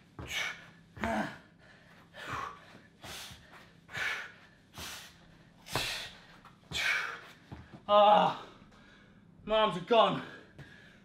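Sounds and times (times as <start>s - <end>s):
man breathing hard: 0.0s - 9.4s, 10.2s - 11.0s.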